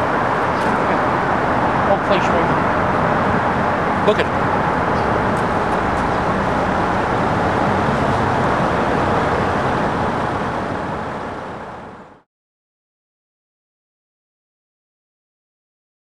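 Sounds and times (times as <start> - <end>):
highway traffic noise: 0.0 - 12.2.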